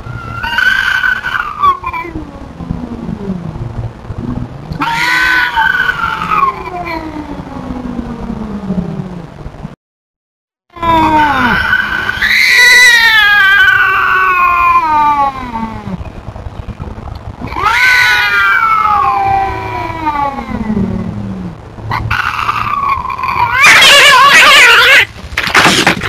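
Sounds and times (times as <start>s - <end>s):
cat yowling: 0.2s - 2.4s, 4.8s - 7.5s, 10.8s - 15.9s, 17.4s - 21.1s, 21.9s - 25.1s.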